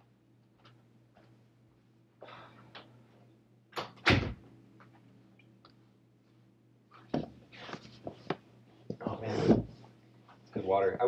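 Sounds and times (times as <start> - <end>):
door closing with thud: 3.8 - 4.4.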